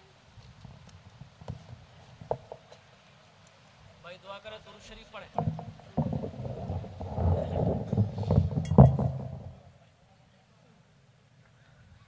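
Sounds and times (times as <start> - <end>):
microphone handling noise: 5.3 - 9.7
knocks on microphone stand: 5.4 - 6.7, 7.9 - 9.6.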